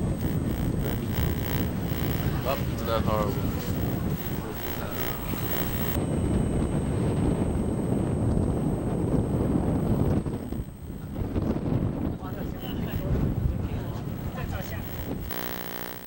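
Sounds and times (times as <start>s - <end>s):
wind blowing across microphone: 0.0s - 15.3s.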